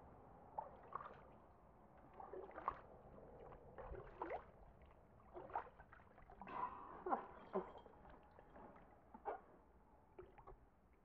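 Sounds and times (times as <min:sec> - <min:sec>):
water splashing in a plastic pool: 0:00.5 - 0:11.0.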